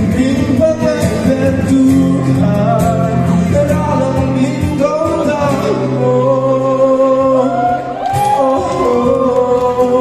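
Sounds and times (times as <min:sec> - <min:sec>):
man singing: 0:00.0 - 0:10.0
strummed acoustic guitars: 0:00.0 - 0:10.0.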